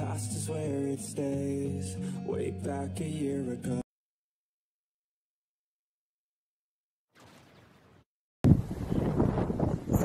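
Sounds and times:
wind buffeting microphone: 8.4s - 10.0s.

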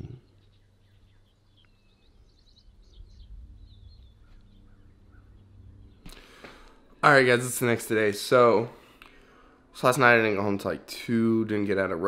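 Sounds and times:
faint birds chirping: 0.0s - 12.0s
low steady hum: 0.0s - 12.0s.

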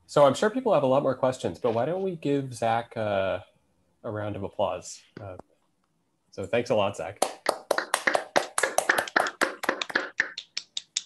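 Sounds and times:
small group applause: 7.2s - 11.0s.

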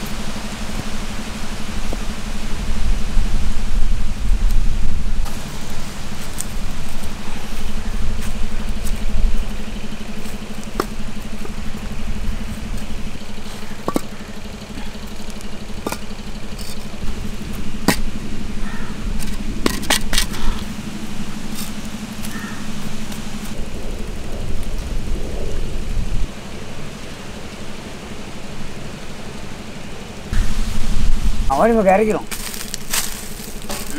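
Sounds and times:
engine hum with low rumble: 0.0s - 33.9s
bricks knocking on ground: 13.8s - 14.2s.

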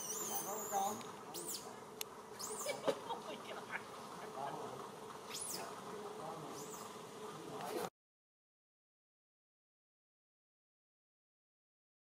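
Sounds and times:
insect buzzing: 0.0s - 7.9s.

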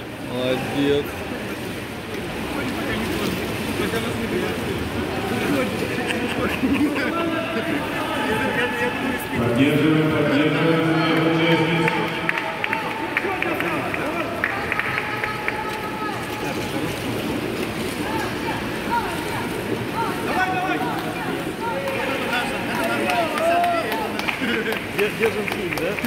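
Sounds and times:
swimmers splashing: 0.0s - 26.0s
people talking: 2.1s - 17.2s, 18.0s - 26.0s.

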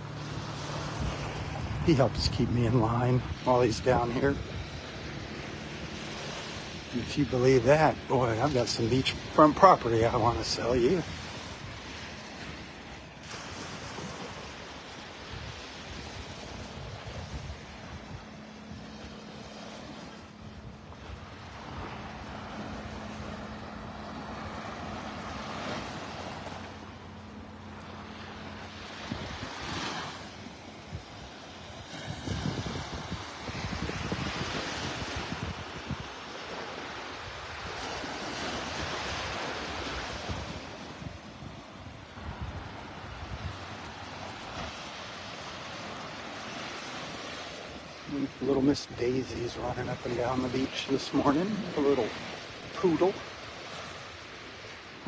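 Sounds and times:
wind buffeting microphone: 0.0s - 26.6s, 28.0s - 36.2s, 37.2s - 53.5s
waves breaking on sandy beach: 0.0s - 55.0s.

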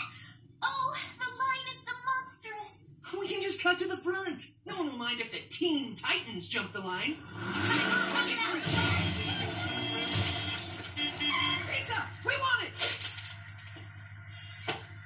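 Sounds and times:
truck engine rumble: 7.0s - 15.0s
horn honking: 7.5s - 12.3s
crashing and smashing: 7.8s - 11.3s.

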